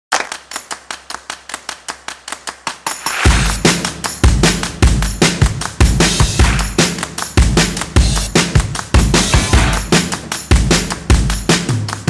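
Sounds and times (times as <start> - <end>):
sharp percussive ticks: 0.1 - 12.0
heavy bass and drum beat: 3.0 - 12.0.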